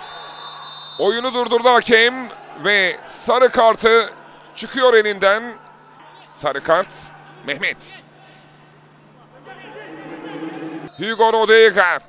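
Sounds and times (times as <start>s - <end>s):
men calling out: 1.2s - 10.9s.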